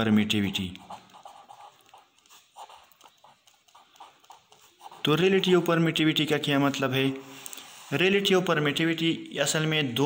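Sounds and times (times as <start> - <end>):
marker pen scratching on paper: 0.4 - 6.2.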